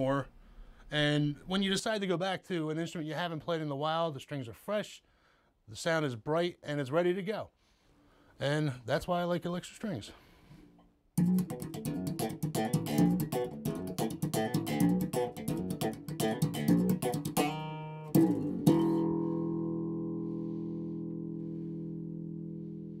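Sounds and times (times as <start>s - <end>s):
electric bass plucked notes: 11.2s - 23.0s.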